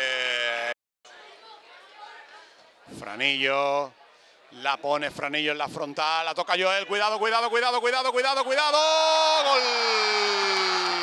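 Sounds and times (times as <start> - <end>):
commentator's long drawn-out shout: 7.4 - 11.0.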